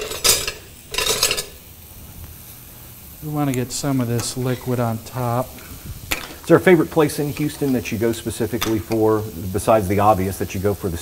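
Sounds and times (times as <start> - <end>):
metal spoon scraping a pan: 0.0 - 1.6.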